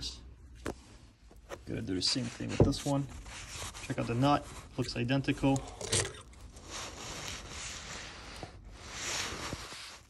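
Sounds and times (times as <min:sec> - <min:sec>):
handling rubbing and scraping: 0:00.6 - 0:05.7, 0:06.3 - 0:10.0.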